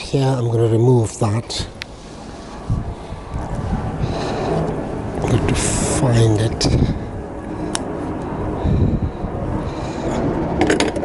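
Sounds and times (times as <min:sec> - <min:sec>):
wind buffeting microphone: 0:01.5 - 0:11.0.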